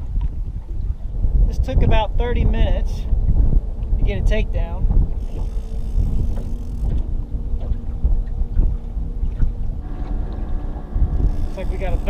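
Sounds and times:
outboard motor hum: 0.0 - 12.0
wind buffeting microphone: 0.0 - 12.0.

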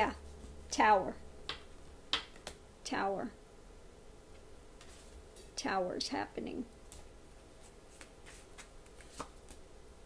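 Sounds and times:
cards shuffling: 6.9 - 9.6.

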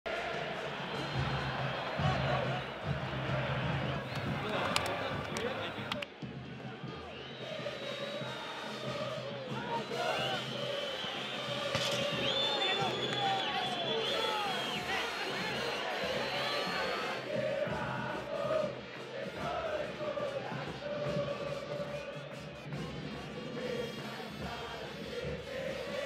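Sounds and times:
low drum beats: 0.1 - 13.4
crowd voices: 0.1 - 26.0
fans singing: 0.1 - 26.0.

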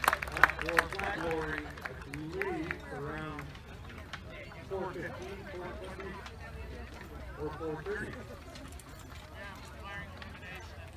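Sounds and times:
people talking outdoors: 0.0 - 10.9.

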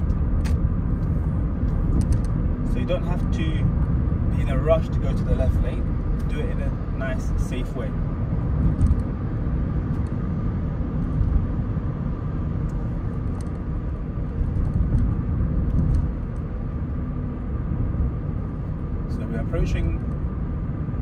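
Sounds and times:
car cabin rumble of tyres and engine: 0.0 - 21.0.

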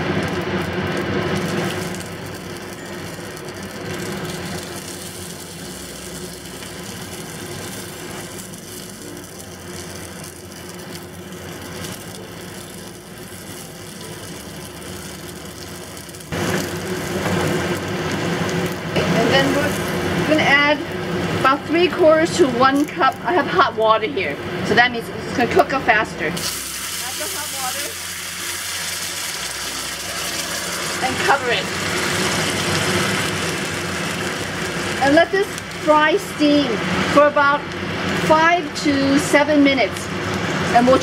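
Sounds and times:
oil sizzling in a pan: 0.0 - 23.7, 26.4 - 41.0.

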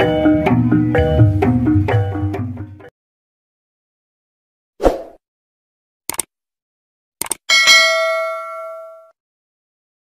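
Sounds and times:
bright bell ding: 7.5 - 9.2.

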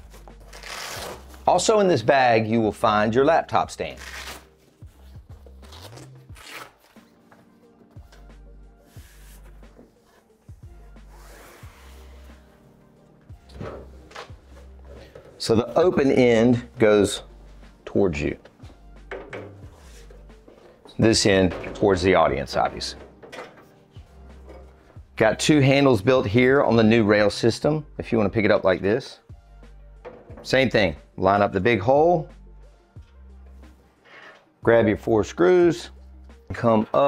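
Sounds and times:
soft rub of metal console: 19.7 - 20.8.

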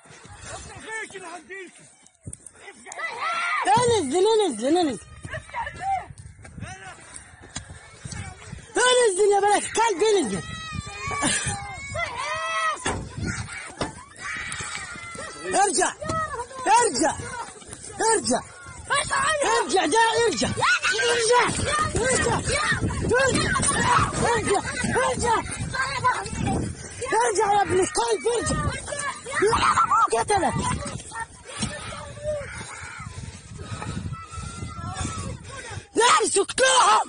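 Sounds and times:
voices screaming in distress: 2.6 - 37.0.

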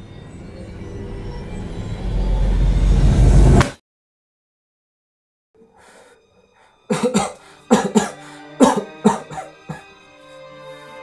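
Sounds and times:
background music chords: 5.8 - 11.0
man coughing hard: 6.9 - 9.9.

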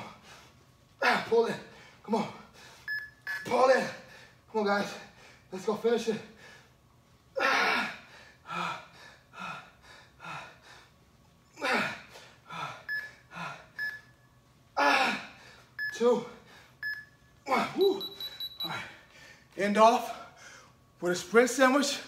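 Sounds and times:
interval timer beeps: 2.9 - 3.5, 12.9 - 13.1, 13.8 - 14.2, 15.8 - 16.0, 16.8 - 17.2, 17.8 - 18.8
man grunting and exhaling: 7.4 - 9.6, 11.6 - 13.6.

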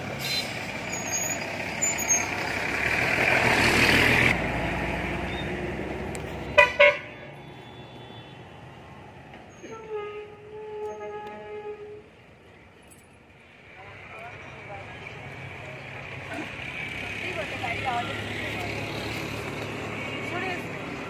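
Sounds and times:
vehicle passing by: 1.4 - 6.6, 14.3 - 21.0
vehicle horn toots: 6.5 - 8.4.

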